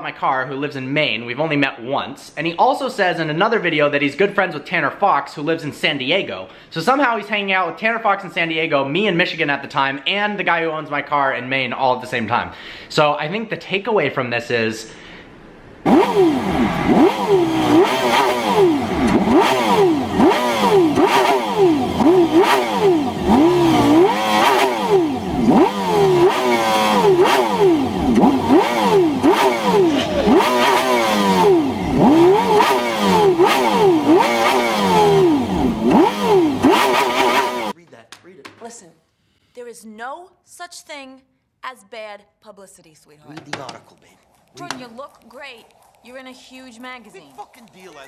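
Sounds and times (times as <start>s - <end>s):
car engine revving hard: 15.8s - 37.8s.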